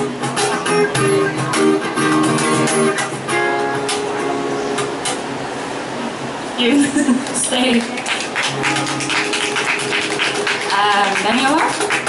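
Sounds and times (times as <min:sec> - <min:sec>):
cajon strokes: 0:00.0 - 0:04.1
acoustic guitar strumming: 0:00.0 - 0:05.9, 0:08.2 - 0:12.0.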